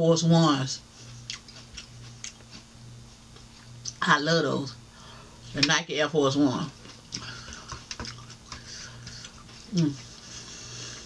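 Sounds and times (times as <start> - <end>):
chewing mouth sounds: 1.1 - 2.7, 6.8 - 10.1.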